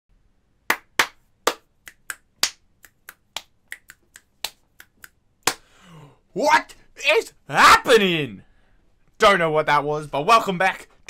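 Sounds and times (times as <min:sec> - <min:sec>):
hands clapping: 0:00.7 - 0:05.7.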